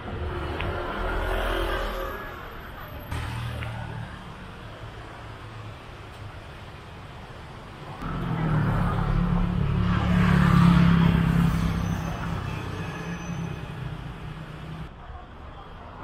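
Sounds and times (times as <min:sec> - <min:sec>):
quiet street noise: 0:00.0 - 0:16.0.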